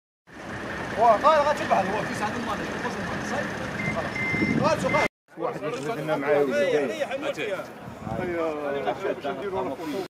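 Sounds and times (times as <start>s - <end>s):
street noise: 0.3s - 10.0s
men's voices: 0.9s - 10.0s
high electronic beeps: 3.7s - 5.1s.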